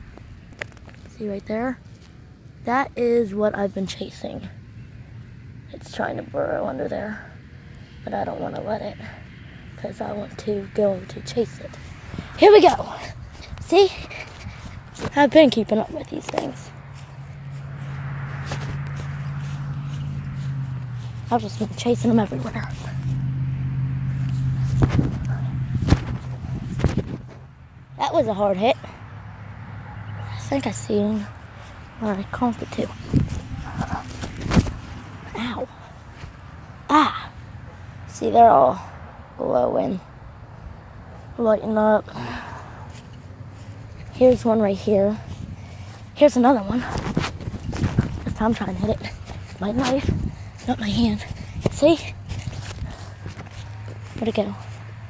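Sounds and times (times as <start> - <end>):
footsteps running over grass: 11.7 - 23.3, 24.1 - 27.4, 31.1 - 36.5, 42.9 - 55.0
knife hitting grassy ground: 33.1 - 34.8.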